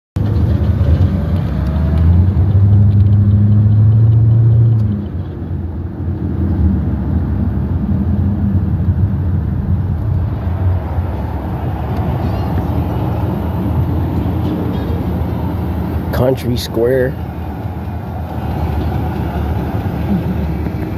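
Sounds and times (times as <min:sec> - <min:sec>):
car engine drone: 0:00.2 - 0:20.9
road rumble inside car: 0:00.2 - 0:20.9.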